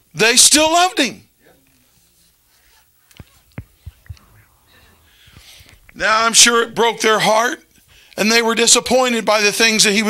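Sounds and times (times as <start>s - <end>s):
faint clicks and taps: 3.0s - 4.5s.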